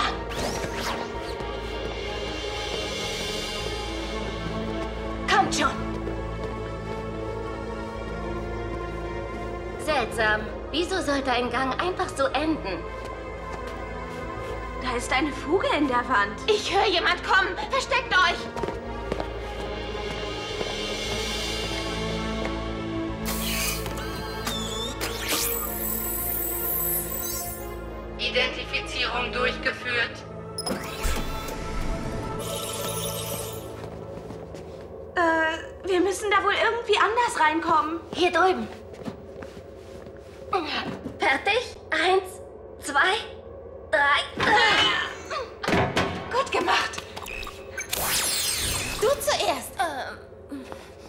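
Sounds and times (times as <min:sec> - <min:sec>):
background music: 0:00.0 - 0:51.0.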